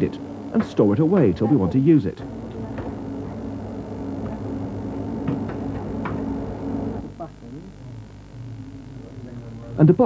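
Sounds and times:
low electronic hum: 0.0 - 10.0.

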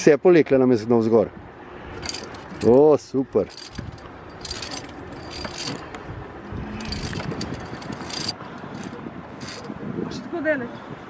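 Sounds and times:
wind on microphone: 1.3 - 11.0
metallic carabiner clinks: 2.0 - 2.8, 3.4 - 6.0, 6.8 - 9.7.

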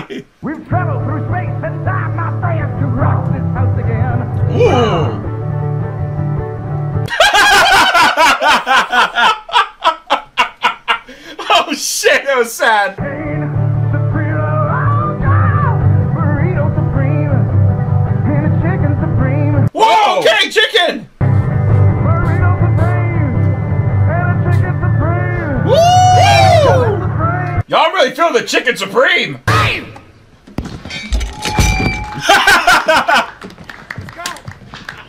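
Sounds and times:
men laughing: 0.0 - 0.4, 7.1 - 11.7, 32.1 - 33.6.

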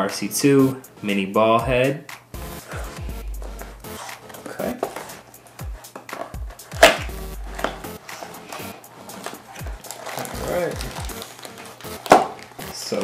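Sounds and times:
background music with beat: 0.0 - 13.0
cardboard box handling: 4.0 - 5.1, 7.5 - 12.6
plastic bag rustling: 7.5 - 13.0.

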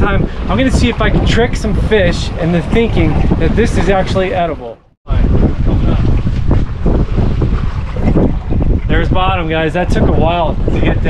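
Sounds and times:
open water: 0.0 - 11.0
wind buffeting microphone: 0.0 - 11.0.

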